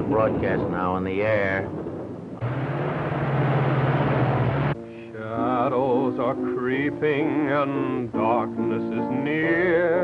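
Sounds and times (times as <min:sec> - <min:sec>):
rushing noise: 0:01.5 - 0:05.1
car engine hum: 0:01.7 - 0:05.1.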